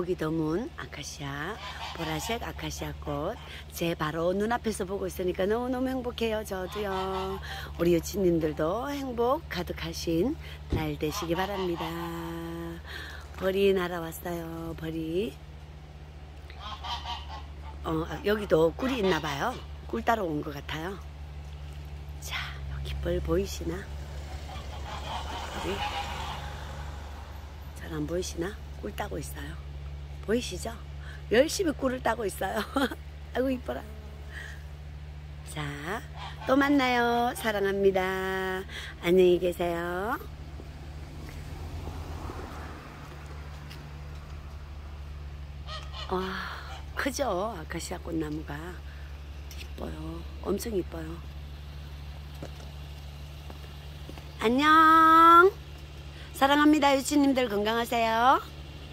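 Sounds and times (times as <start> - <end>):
steady low hum: 0.0 - 58.9
steady low rumble: 0.0 - 58.9
goose honking: 1.3 - 3.6, 6.4 - 8.8, 11.0 - 12.8, 16.5 - 20.0, 23.6 - 27.6, 35.7 - 38.2, 45.6 - 47.1.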